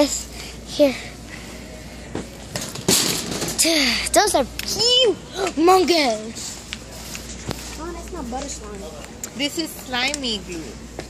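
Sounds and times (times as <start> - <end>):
store background noise: 0.0 - 11.0.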